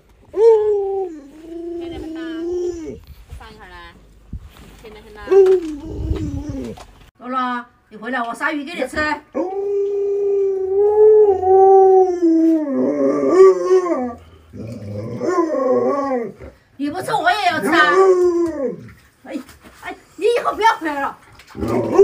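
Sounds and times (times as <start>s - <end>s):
dog howling: 9.3s - 16.5s, 17.5s - 18.9s
dog yowling: 17.5s - 18.9s.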